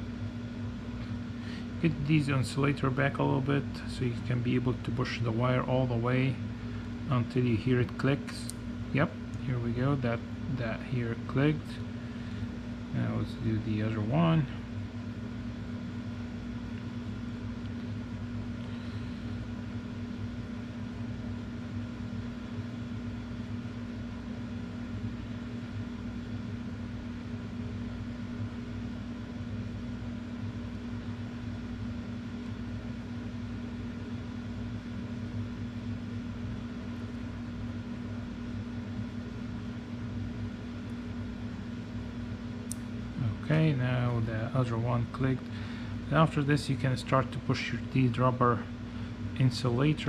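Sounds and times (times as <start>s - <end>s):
mechanical hum: 0.0s - 50.0s.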